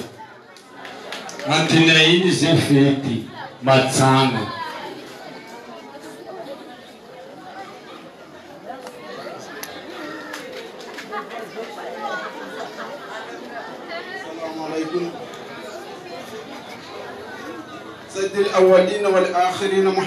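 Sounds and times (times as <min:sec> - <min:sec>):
crowd chattering: 0:00.0 - 0:20.0.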